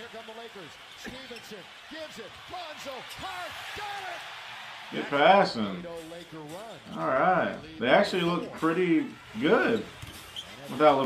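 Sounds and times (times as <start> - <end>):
squeaky tones: 8.1 - 11.0.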